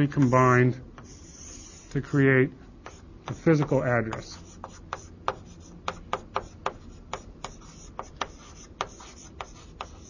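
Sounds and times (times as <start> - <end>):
faint room hum: 0.0 - 10.0
handwriting taps and scratches: 1.0 - 2.0, 2.8 - 10.0.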